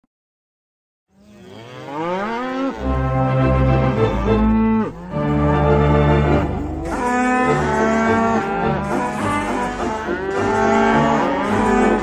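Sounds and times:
pipe organ chords: 2.8 - 12.0.

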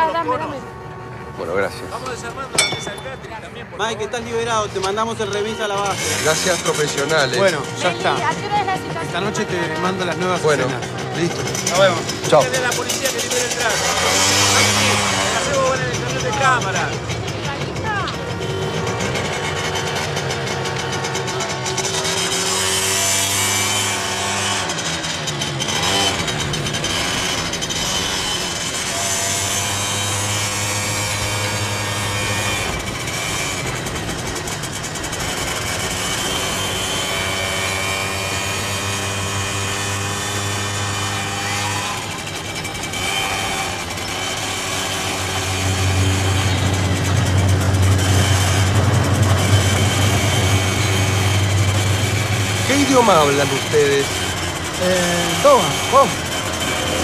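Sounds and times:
small motorcycle engine running: 0.0 - 57.0.

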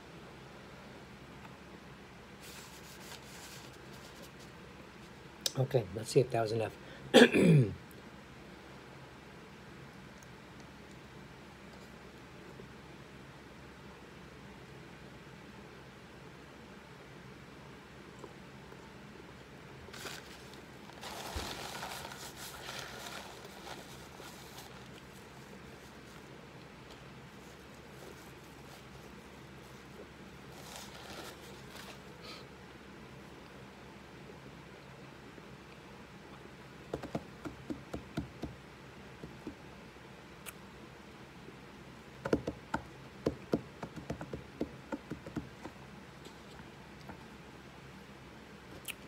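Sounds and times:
paper towel crinkling: 2.4 - 5.2, 19.9 - 26.3, 26.9 - 32.2.

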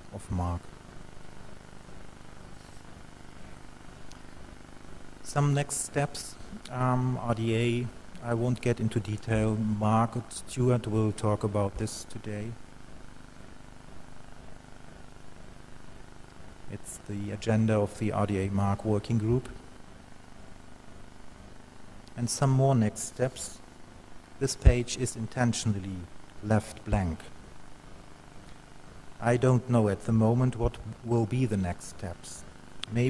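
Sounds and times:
faint constant tone: 0.0 - 33.0
man's voice: 29.2 - 33.0.

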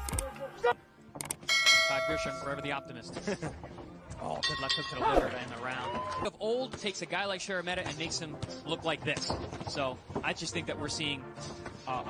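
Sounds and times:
boxing ring bell ringing: 1.5 - 3.0, 4.4 - 5.1.

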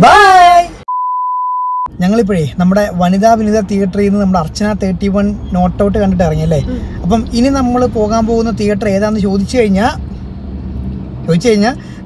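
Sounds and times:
steady electronic beep: 0.9 - 1.9.

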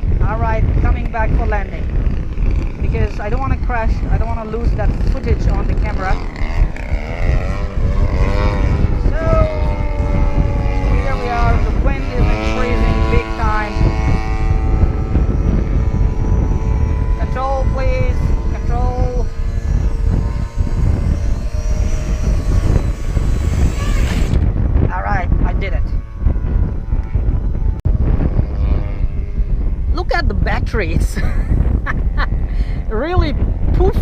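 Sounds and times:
electric motor and propeller whine: 0.0 - 34.0
wind rumble on microphone: 0.0 - 34.0.

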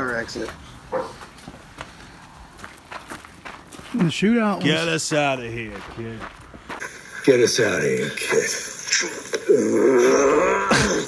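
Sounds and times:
footsteps on gravel: 0.0 - 7.0.

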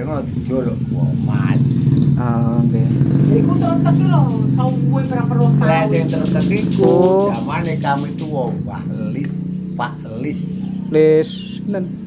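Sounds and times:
man talking: 0.0 - 3.0, 5.6 - 12.0
motorcycle engine idling: 0.0 - 12.0.

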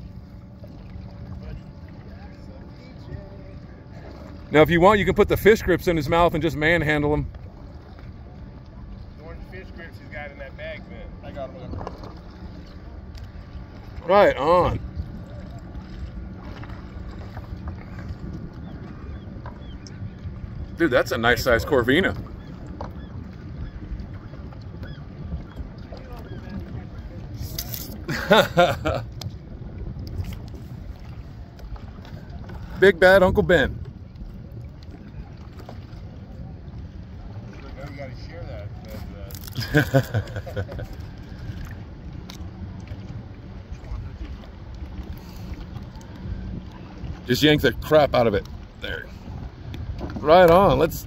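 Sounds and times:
wind rumbling on microphone: 10.8 - 51.0.

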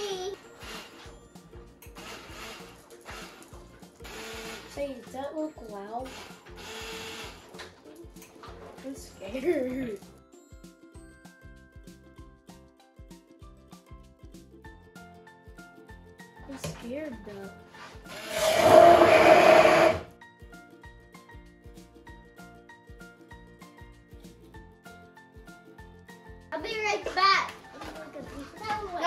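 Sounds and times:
immersion blender motor: 0.5 - 1.1, 1.9 - 4.8, 6.1 - 7.6, 18.1 - 20.1
background music with beat: 5.6 - 16.6.

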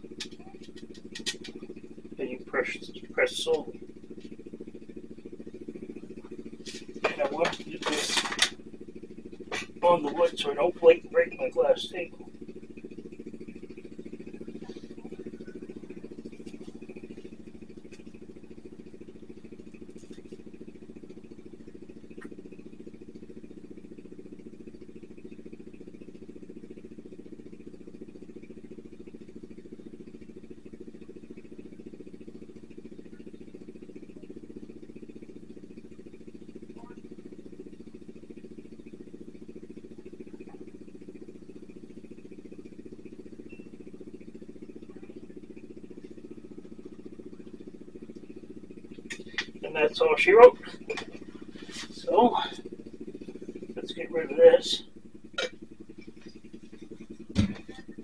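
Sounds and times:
low machine hum: 0.0 - 58.0.

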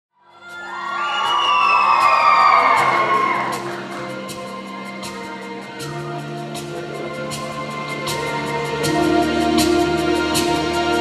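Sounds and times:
audience cheering and whooping: 0.4 - 4.2.

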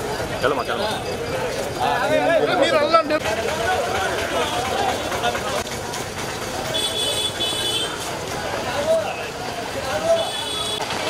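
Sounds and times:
busy street noise: 0.0 - 11.0
crowd voices: 0.0 - 11.0
vehicle horn honking: 6.7 - 8.0, 10.1 - 10.9.

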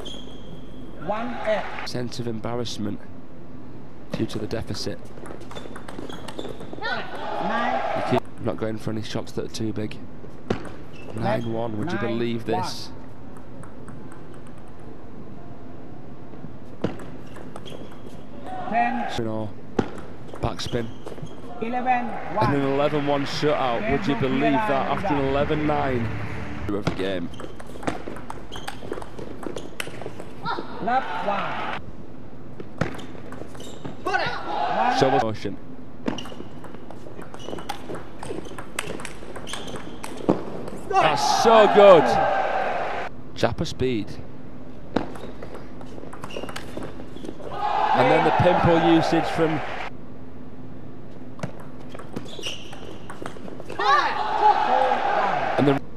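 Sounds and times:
table tennis ball clicking: 13.3 - 14.8
indoor hall ambience: 21.0 - 35.0.

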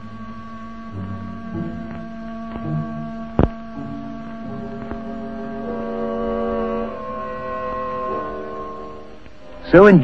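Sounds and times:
hum of held tones: 0.0 - 10.0.

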